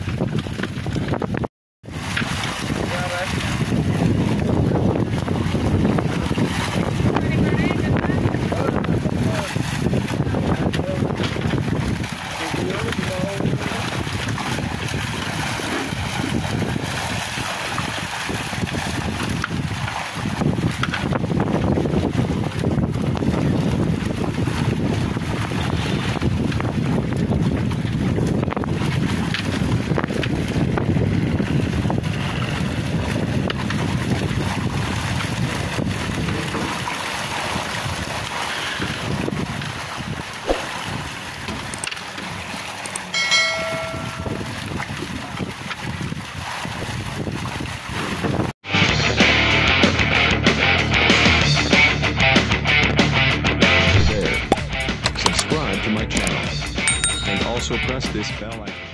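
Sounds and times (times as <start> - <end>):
wind on microphone: 0.0 - 41.8, 42.5 - 48.6, 53.9 - 55.3
water splashing and churning: 0.0 - 48.6, 53.6 - 58.8
short electronic chime: 43.2 - 44.6.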